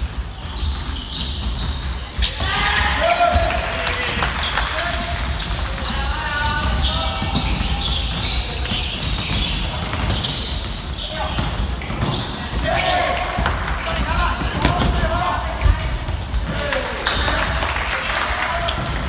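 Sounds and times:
sneakers squeaking: 0:00.0 - 0:19.0
players calling out: 0:02.2 - 0:19.0
basketball bouncing on wooden floor: 0:05.2 - 0:16.6.

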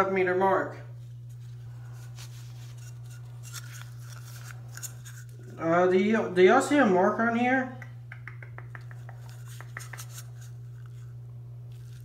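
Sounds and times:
steady low hum: 0:00.0 - 0:12.0
faint rustles and crinkles: 0:00.9 - 0:05.6.

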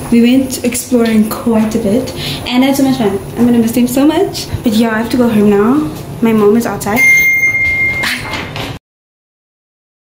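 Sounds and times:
lift arrival chime: 0:07.0 - 0:08.3.

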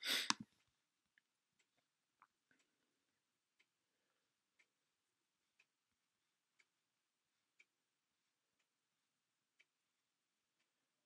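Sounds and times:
faint regular tick: 0:06.6 - 0:06.8.

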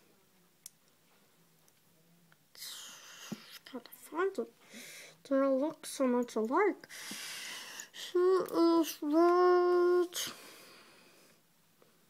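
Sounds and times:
person whispering: 0:02.6 - 0:04.3.

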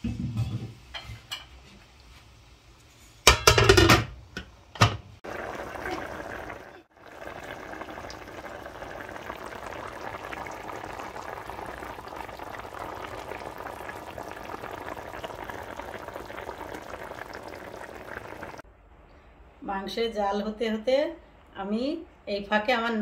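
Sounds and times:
curry bubbling in a pot: 0:05.2 - 0:18.6.

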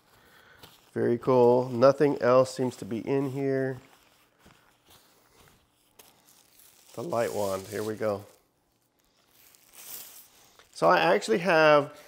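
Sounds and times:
faint soft handling sounds: 0:00.0 - 0:12.0.

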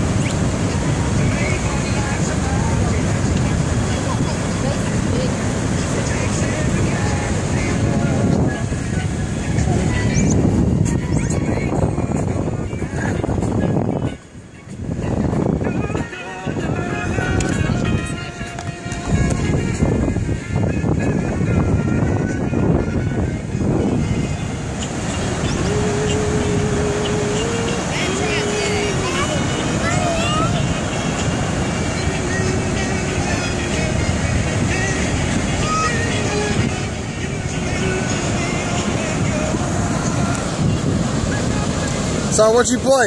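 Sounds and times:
faint voices: 0:00.0 - 0:14.8, 0:20.8 - 0:43.0
ocean surf: 0:00.0 - 0:43.0
wind buffeting microphone: 0:00.0 - 0:43.0.

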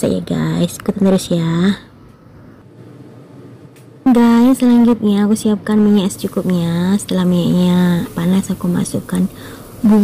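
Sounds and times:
faint steady hiss: 0:05.0 - 0:10.0.

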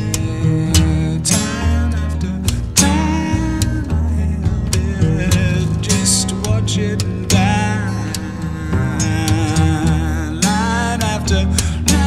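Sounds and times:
acoustic guitar plucked: 0:00.0 - 0:12.0
deep bass notes: 0:00.0 - 0:12.0.

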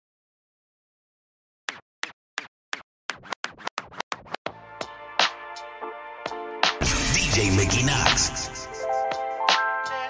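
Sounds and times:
record scratching: 0:03.1 - 0:04.4, 0:06.8 - 0:08.8.

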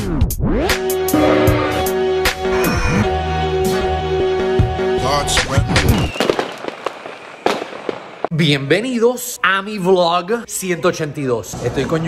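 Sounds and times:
sharp pops and crackles: 0:05.8 - 0:08.4.

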